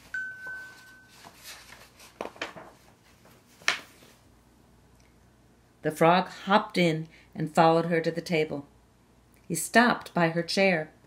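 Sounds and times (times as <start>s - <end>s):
paper pages rustling: 0.0s - 4.2s
paper page flick: 1.2s - 2.8s.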